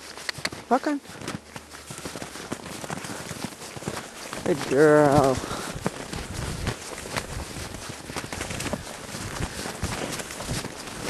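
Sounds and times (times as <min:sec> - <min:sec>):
footsteps crunching in snow: 0:00.0 - 0:11.0
hooves crunching in snow: 0:00.0 - 0:11.0.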